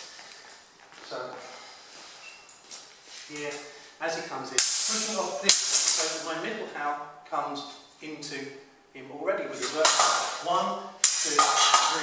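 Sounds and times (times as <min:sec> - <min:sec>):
man speaking: 0:03.3 - 0:12.0.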